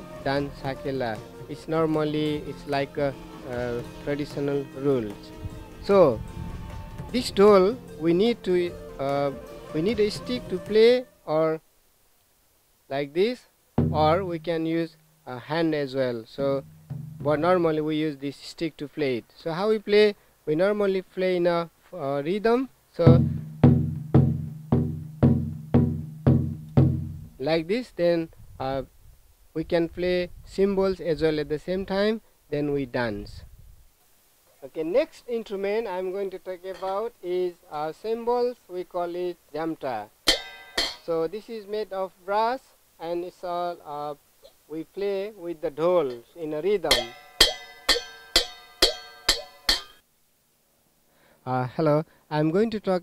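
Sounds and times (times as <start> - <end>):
barrel drum beaten: 13.8 - 14.5, 16.6 - 17.5, 23.1 - 27.4, 40.3 - 41.1
hand cymbals clashing: 40.3 - 41.1, 46.9 - 50.0.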